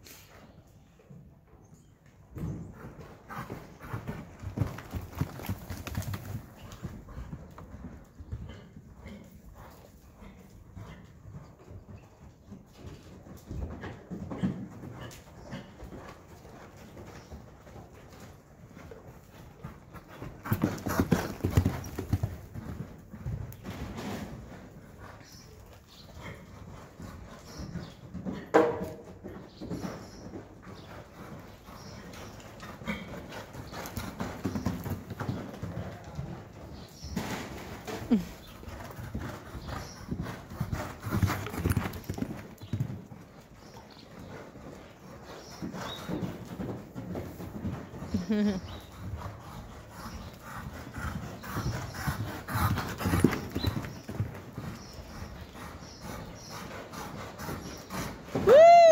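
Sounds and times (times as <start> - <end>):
horse hoofbeats on dirt: 0.1 - 58.9.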